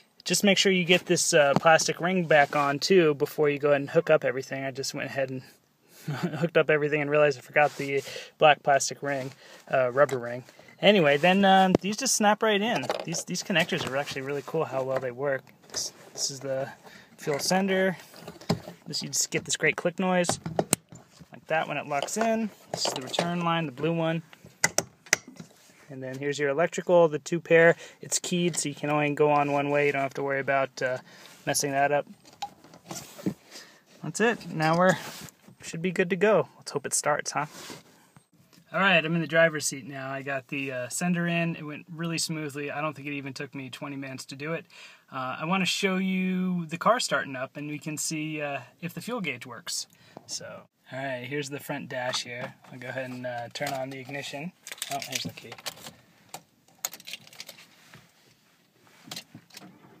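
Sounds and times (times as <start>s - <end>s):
car keys jangling: 56.7s - 57.6s.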